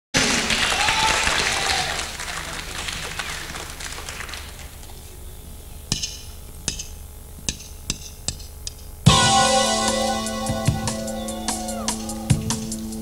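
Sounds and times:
audience applauding: 0.2s - 5.0s
whistle: 10.4s - 12.7s.

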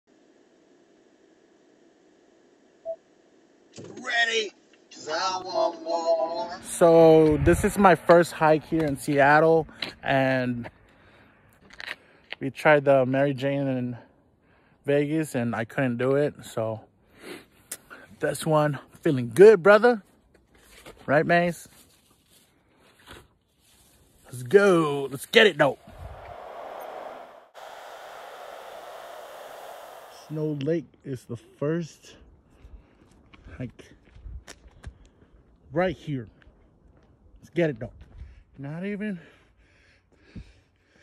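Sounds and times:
faint hiss in car cabin: 24.6s - 30.6s.

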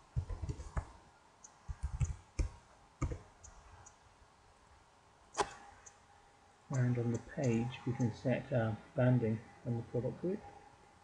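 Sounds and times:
computer mouse clicks: 0.2s - 4.0s.

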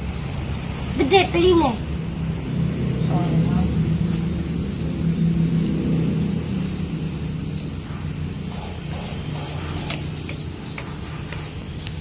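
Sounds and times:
person talking: 1.0s - 1.8s.

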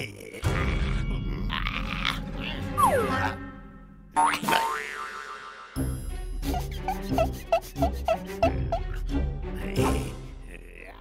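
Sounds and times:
music: 0.3s - 4.2s, 5.8s - 11.0s
cartoon boing: 4.2s - 5.6s.

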